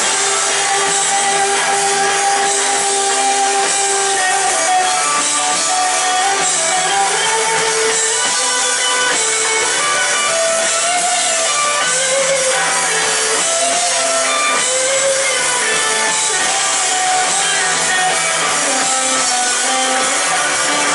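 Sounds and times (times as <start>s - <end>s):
live indie rock band: 0.0s - 20.9s.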